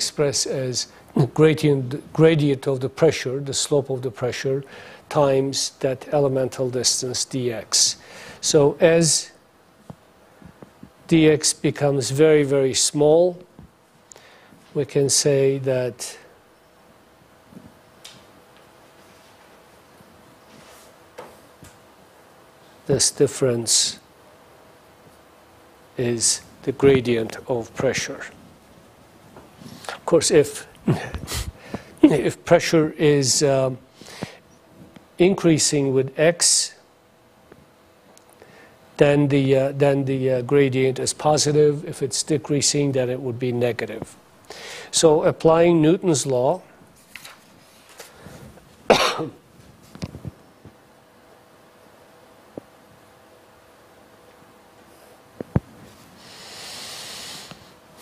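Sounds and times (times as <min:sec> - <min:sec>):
faint room hum: 0:00.0 - 0:58.0
person coughing: 0:30.9 - 0:31.4, 0:32.0 - 0:32.2, 0:48.9 - 0:49.4.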